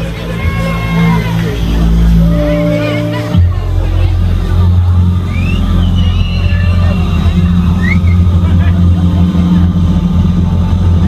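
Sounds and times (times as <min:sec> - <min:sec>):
distorted rock band droning: 0:00.0 - 0:11.0
high whistling glides: 0:05.2 - 0:08.6.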